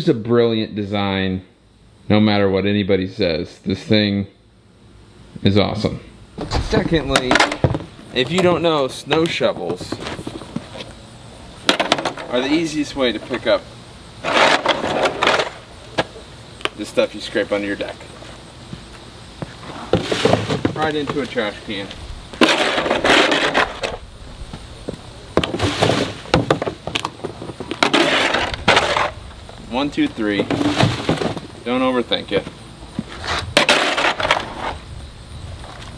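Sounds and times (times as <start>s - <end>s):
snow shovel scraping on concrete: 14.2s - 15.6s, 19.7s - 20.6s, 22.4s - 24.0s, 25.6s - 26.2s, 27.8s - 29.2s, 33.1s - 34.8s
shovel knocks: 22.4s - 23.9s, 33.6s - 34.5s.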